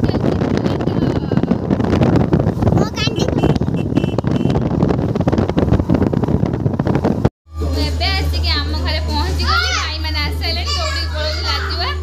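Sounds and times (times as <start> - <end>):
high-pitched voice talking excitedly: 2.7 - 3.6, 10.6 - 12.0.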